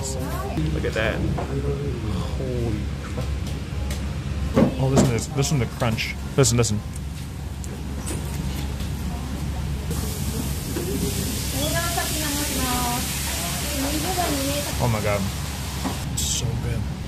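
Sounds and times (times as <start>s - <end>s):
dumplings sizzling on a griddle: 9.9s - 16.0s.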